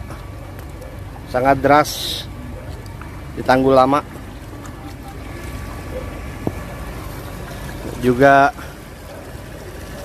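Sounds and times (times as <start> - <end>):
floodwater rushing: 0.0 - 10.0.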